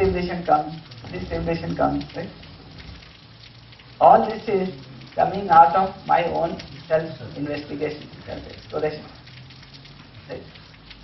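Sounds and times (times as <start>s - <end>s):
crackling hiss: 0.0s - 11.0s.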